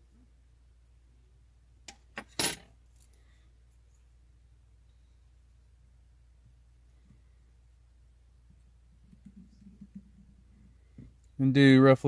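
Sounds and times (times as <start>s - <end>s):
metal tools clattering: 2.2s - 3.1s.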